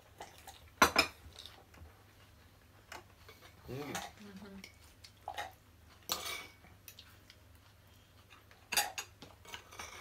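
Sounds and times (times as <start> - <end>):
cutlery clinking against bowls: 2.9 - 6.6, 8.6 - 10.0.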